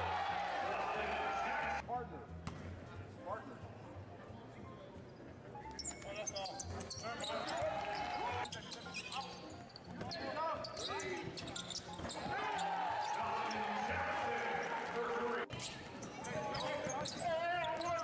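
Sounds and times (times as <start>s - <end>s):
sneakers squeaking: 5.1s - 14.4s, 15.5s - 18.0s.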